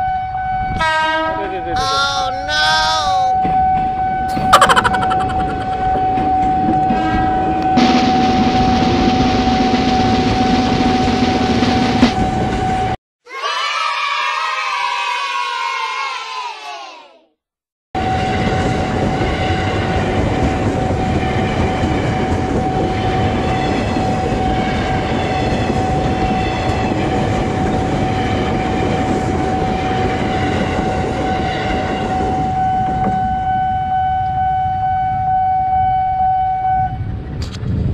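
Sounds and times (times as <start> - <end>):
several pitches falling together: 4.3 - 6.2
train wheel and running noise: 6.1 - 13.0, 18.0 - 33.8.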